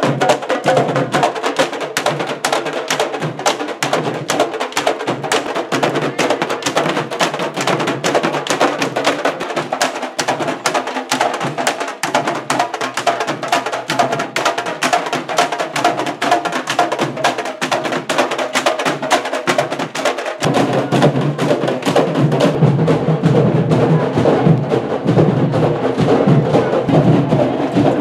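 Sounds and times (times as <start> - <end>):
hand drums playing rhythm: 0.0 - 28.0.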